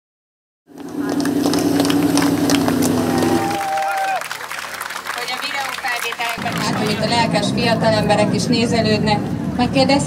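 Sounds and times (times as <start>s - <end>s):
truck engine at high revs: 0.7s - 10.0s.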